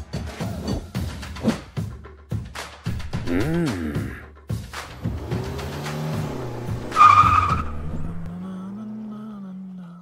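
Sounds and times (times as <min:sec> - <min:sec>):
car engine running: 0:04.9 - 0:10.0
tyre squeal: 0:06.9 - 0:08.2.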